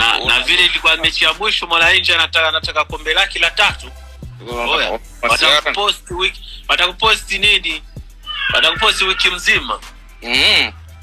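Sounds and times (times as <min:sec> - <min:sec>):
background music: 0:00.0 - 0:11.0
person vocalizing high-pitched: 0:08.3 - 0:09.2.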